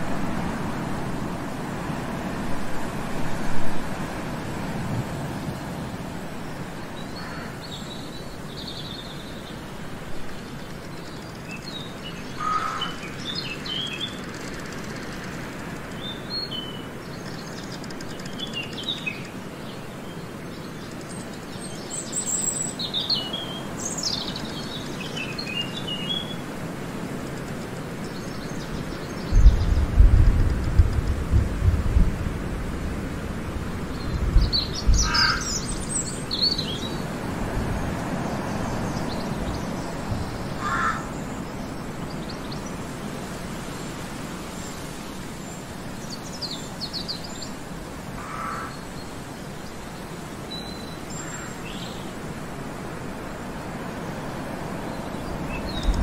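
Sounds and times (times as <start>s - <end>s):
steady background hiss: 0.0s - 56.0s
bird chirps and calls: 34.0s - 37.0s.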